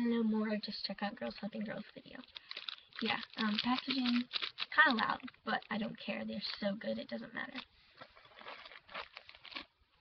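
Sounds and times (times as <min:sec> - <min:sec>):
plastic wrappers crinkling: 0:01.3 - 0:09.8.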